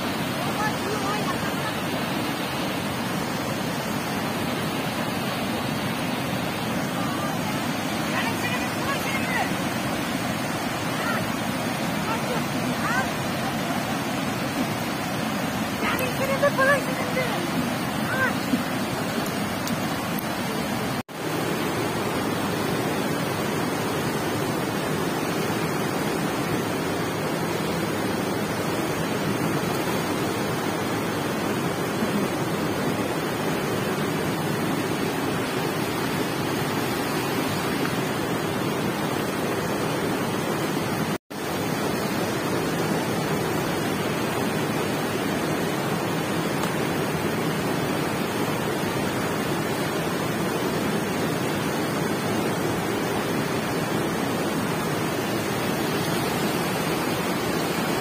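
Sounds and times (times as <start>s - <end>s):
river rushing over rocks: 0.0s - 58.0s.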